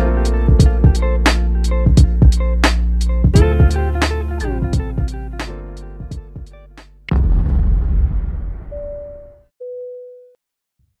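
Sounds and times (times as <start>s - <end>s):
deep boom hit: 7.1s - 9.4s.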